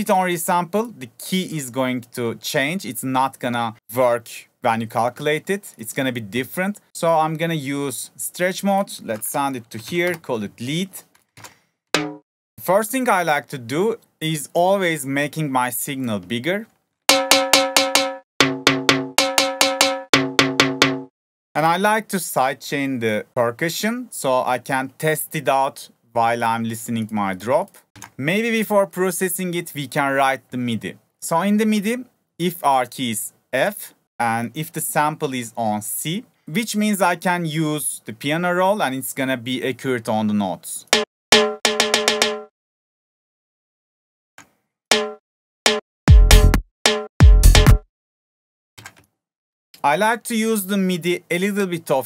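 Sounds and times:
tonal percussion hits: 12.0 - 12.2, 17.1 - 21.1, 41.4 - 42.5, 44.9 - 47.8
ringing percussion hits: 17.1 - 21.0.

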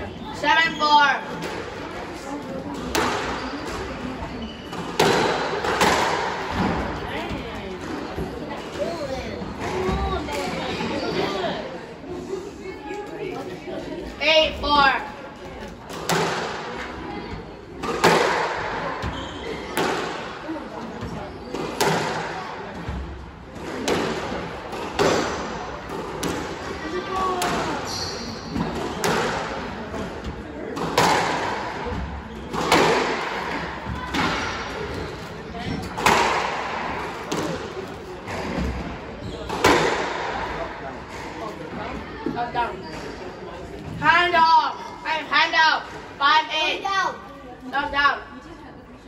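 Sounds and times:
shoe squeaks on wooden floor: 3.3 - 4.9, 19.0 - 19.8, 27.8 - 29.0, 39.2 - 39.5.

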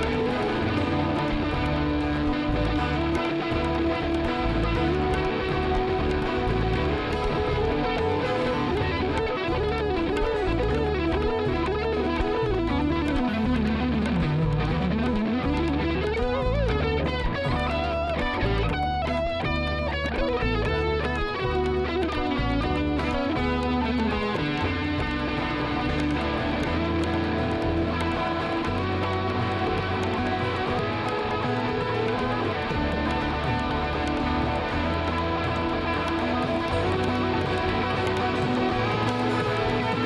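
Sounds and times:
acoustic guitar: 0.0 - 40.0
bass: 0.0 - 40.0
electric guitar lead: 0.0 - 40.0
hand drums: 0.0 - 40.0.

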